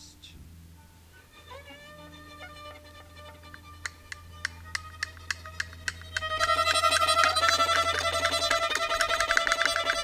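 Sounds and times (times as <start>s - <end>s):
held violin notes: 0.0s - 10.0s
plucked violin notes: 0.7s - 10.0s.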